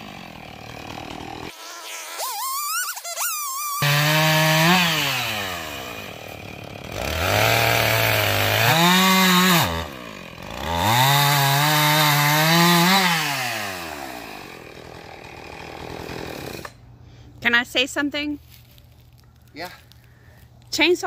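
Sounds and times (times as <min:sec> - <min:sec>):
chainsaw cutting log: 0:00.0 - 0:16.8.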